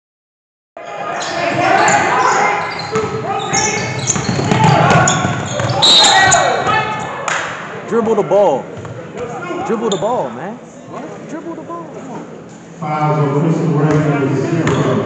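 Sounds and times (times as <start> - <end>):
sneakers squeaking: 0.8 - 7.1, 8.7 - 10.4, 14.5 - 15.0
players shouting: 0.8 - 7.2
basketball dribbling: 2.9 - 5.8.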